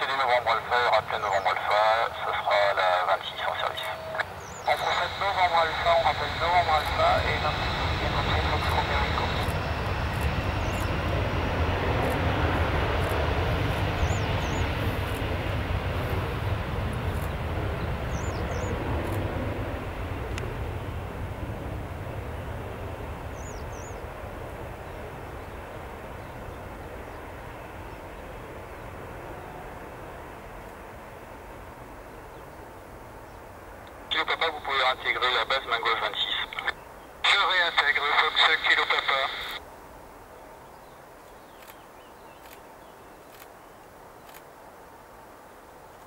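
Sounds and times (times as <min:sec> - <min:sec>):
jet engine noise: 0:00.0 - 0:40.3
high fan whine: 0:00.0 - 0:40.6.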